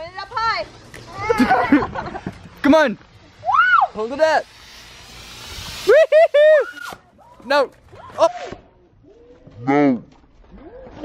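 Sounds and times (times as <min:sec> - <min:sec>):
smoke firework hissing: 0:02.7 - 0:07.3.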